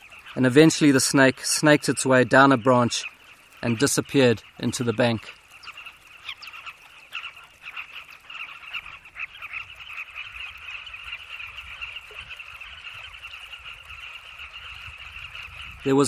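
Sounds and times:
chorus of bird calls: 0.0s - 16.0s.

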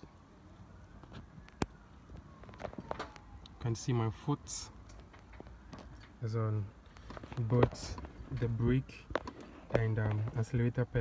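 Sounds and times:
faint background noise: 0.0s - 11.0s.

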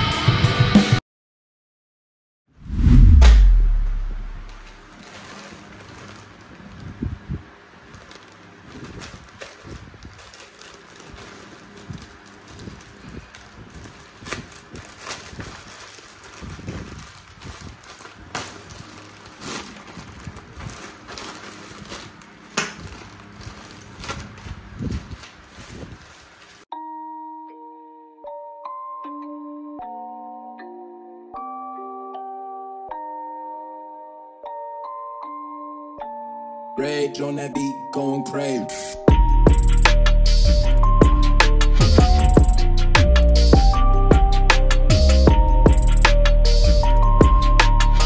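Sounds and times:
loud low boom: 2.6s - 4.9s
plastic mailer bag tearing: 4.5s - 7.0s, 7.8s - 26.7s
thin plastic wrapper crinkling: 4.6s - 7.0s, 7.8s - 26.7s.

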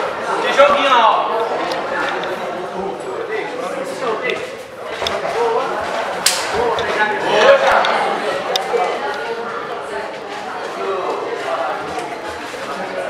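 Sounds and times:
spectators talking and calling out: 0.0s - 13.0s.

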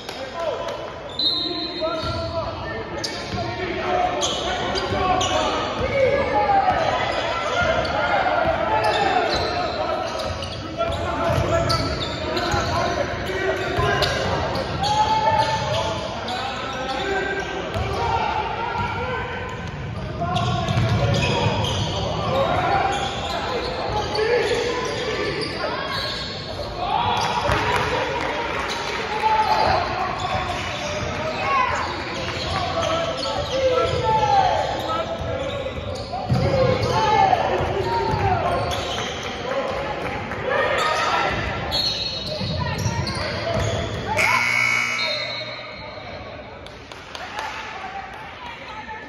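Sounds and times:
voices calling and shouting: 0.0s - 46.6s.

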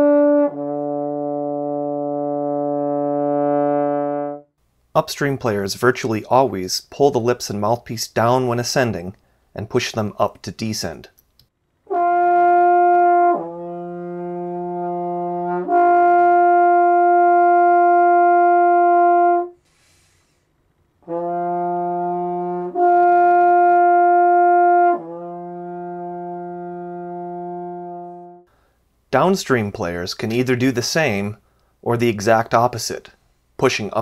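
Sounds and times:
brass instrument slurring notes: 0.0s - 4.5s, 11.9s - 20.3s, 21.0s - 28.5s.

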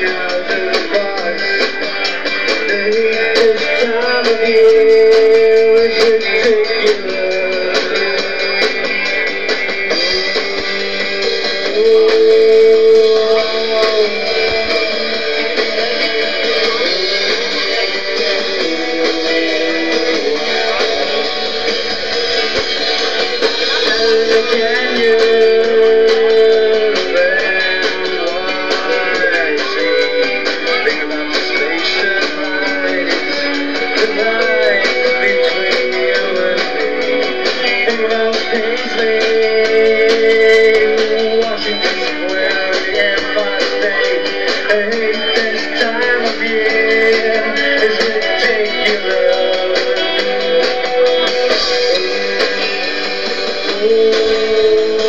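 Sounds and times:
electric guitars strumming: 0.0s - 55.0s
live rock band playing: 0.0s - 55.0s.

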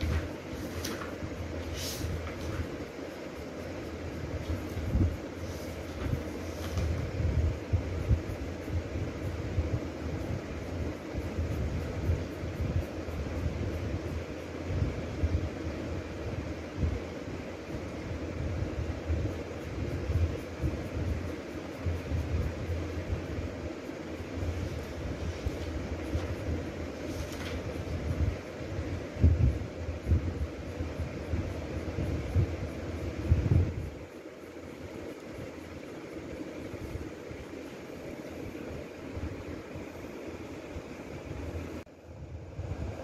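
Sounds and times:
low rumbling background noise: 0.0s - 43.0s.

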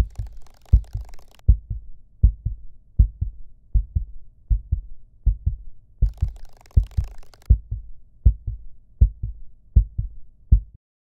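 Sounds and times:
heartbeat thumps: 0.0s - 10.8s.

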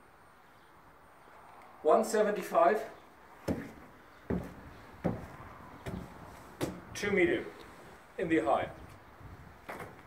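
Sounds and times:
knocks inside a box trailer: 3.5s - 7.0s.

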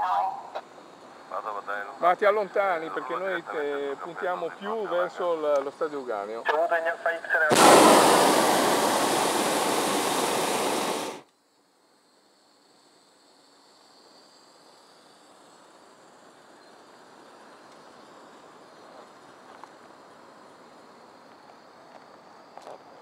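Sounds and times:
faint steady hiss: 0.0s - 23.0s
propane burner firing: 7.5s - 11.3s.

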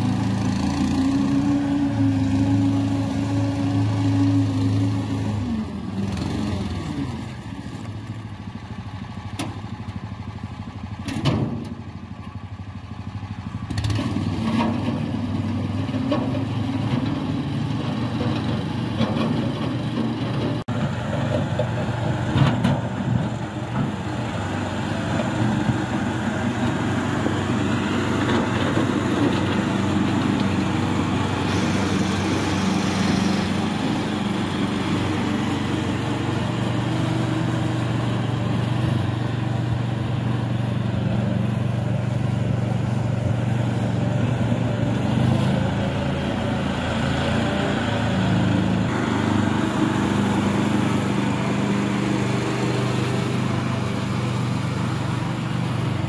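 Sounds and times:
small engine running: 23.5s - 56.0s.

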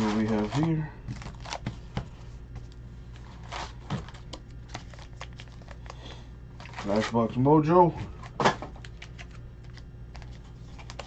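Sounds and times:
wrapped packs rustling and crinkling: 0.0s - 1.9s, 3.2s - 7.4s.

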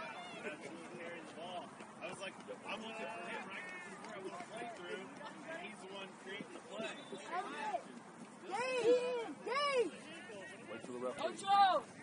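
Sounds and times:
distant shouts and calls: 0.0s - 0.6s, 6.4s - 12.0s.

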